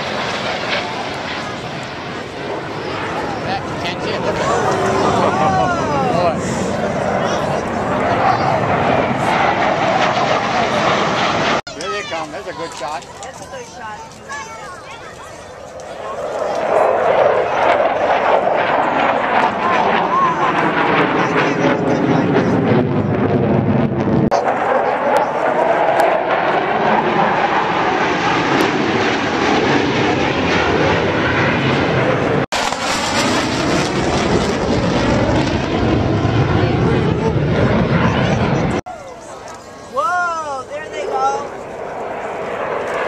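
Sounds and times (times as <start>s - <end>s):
jets passing overhead: 0.0s - 43.0s.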